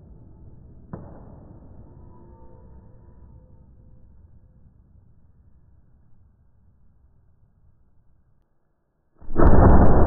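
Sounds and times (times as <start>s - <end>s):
firework tones: 9.2s - 10.0s
low firework rumble: 9.2s - 10.0s.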